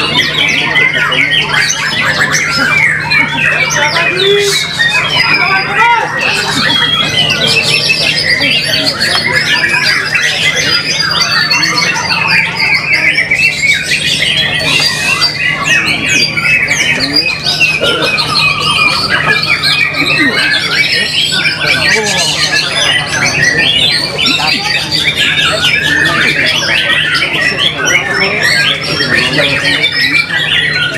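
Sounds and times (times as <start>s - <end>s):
bird singing whistles and trills: 0.0s - 30.9s.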